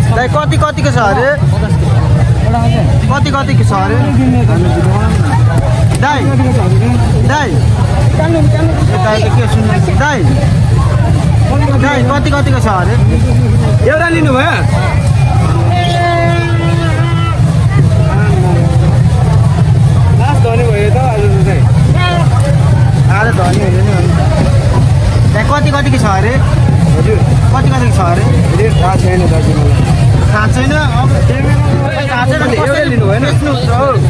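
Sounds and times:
loud crowd babble: 0.0 - 34.0
steady low rumble: 0.0 - 34.0.

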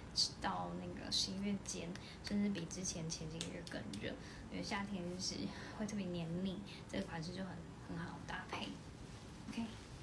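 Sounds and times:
woman speaking breathily: 1.8 - 2.5, 4.1 - 7.2.

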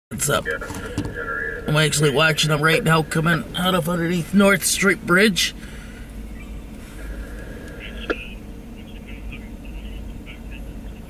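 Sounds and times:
low rumble in car cabin: 0.1 - 11.0.

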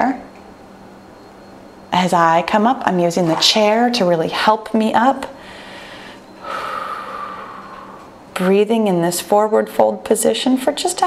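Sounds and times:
woman exhaling: 5.4 - 8.2.

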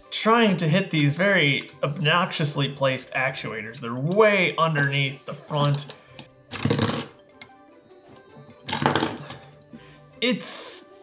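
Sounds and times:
soft background music: 0.0 - 11.0
plastic toy pieces clattering: 5.6 - 7.2, 8.7 - 9.4.

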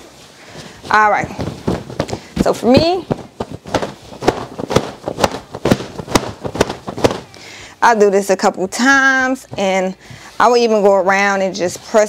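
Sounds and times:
fabric snapping and rustling: 0.1 - 7.4.

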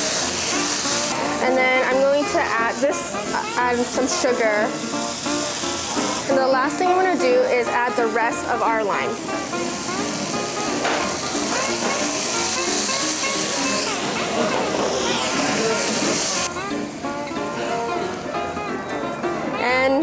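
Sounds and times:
juice sizzling in frying pan: 0.0 - 18.8
background music: 0.0 - 20.0.

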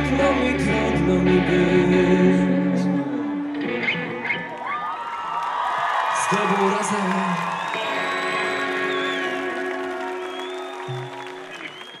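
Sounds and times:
audience applause: 4.3 - 12.0.

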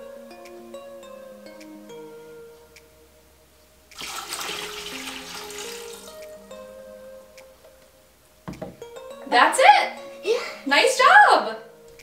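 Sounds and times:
background music: 0.0 - 12.0
water pouring into metal pot: 4.0 - 6.2
pitcher knocking on counter: 8.5 - 8.8.

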